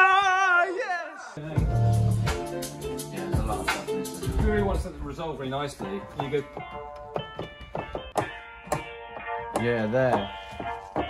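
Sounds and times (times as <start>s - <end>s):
keyboard chords ringing: 1.4s - 11.0s.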